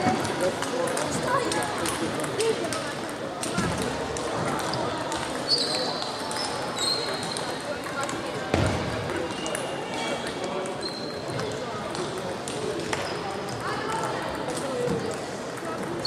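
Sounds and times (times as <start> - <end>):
chatter of players: 0.0 - 16.0
table tennis balls clicking: 0.2 - 8.2.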